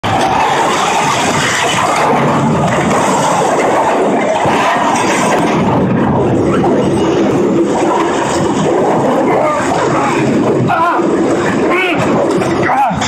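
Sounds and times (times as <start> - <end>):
fire burning: 0.0 - 13.0.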